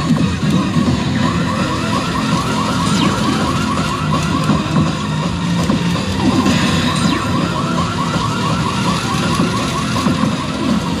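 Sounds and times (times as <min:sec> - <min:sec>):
slot machine music and effects: 0:00.0 - 0:11.0.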